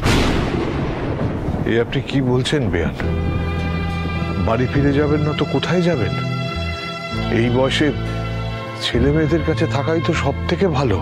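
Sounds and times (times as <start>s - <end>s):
loud boom sound effect: 0.0s - 1.8s.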